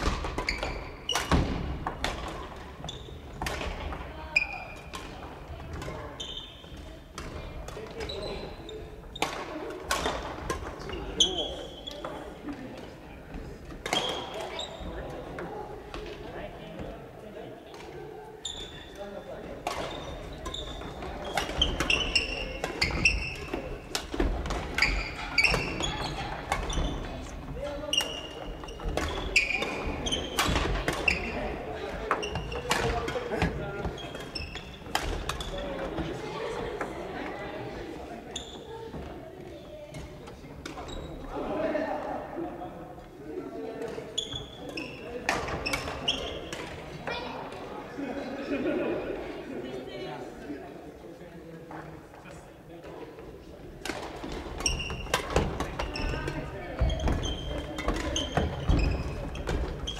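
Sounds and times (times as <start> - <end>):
rackets hitting shuttlecocks: 0.0 - 2.7, 53.8 - 59.9
sneakers squeaking on wooden floor: 0.0 - 12.4, 13.3 - 16.2, 18.4 - 36.3, 38.2 - 41.3, 43.9 - 47.6, 53.8 - 59.9
players' voices: 0.0 - 59.9.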